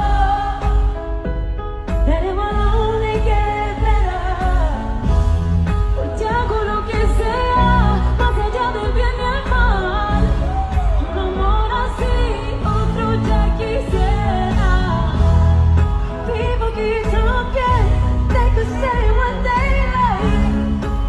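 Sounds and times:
bass: 0:00.0 - 0:21.0
woman singing: 0:00.0 - 0:21.0.

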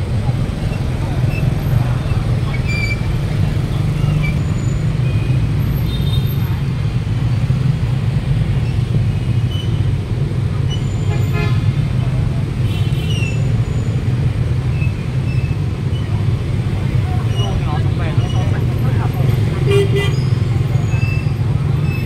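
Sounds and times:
city traffic din: 0:00.0 - 0:22.0.

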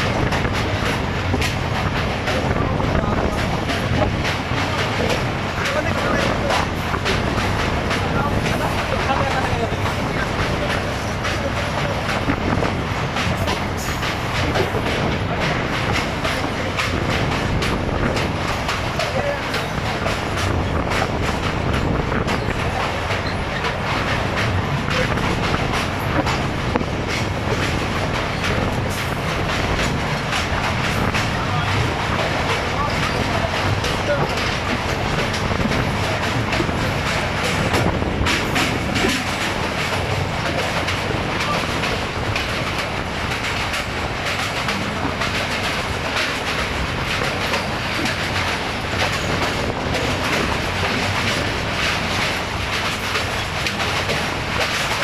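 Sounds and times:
train rumbling on bridge: 0:00.0 - 0:55.0
wheels clattering on rails: 0:00.0 - 0:55.0.

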